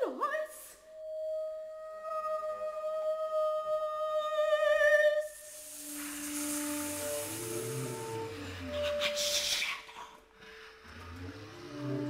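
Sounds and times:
airy breathy hiss: 5.2 - 11.8
held note with wavering vibrato: 5.6 - 9.3.

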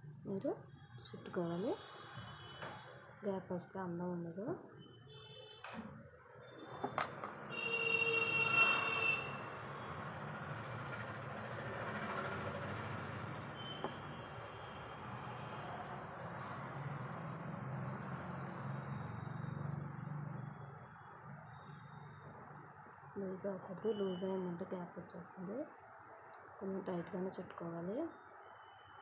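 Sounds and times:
horn sounding: 7.5 - 9.4.

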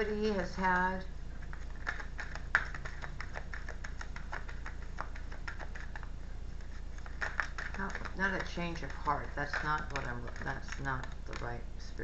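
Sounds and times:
steady low hum: 0.0 - 12.0
cards being shuffled: 1.4 - 11.7.

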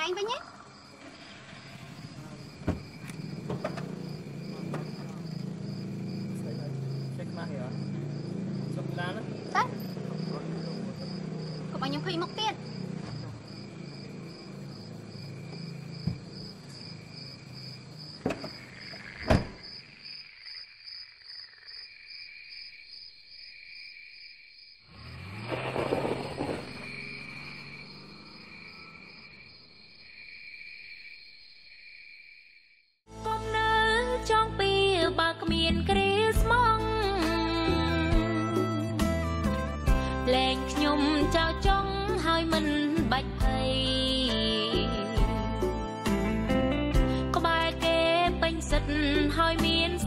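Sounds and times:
crickets chirping: 0.0 - 33.0
sharp knocks: 2.6 - 5.2, 18.2 - 18.6
noisy rustle: 25.2 - 27.6.

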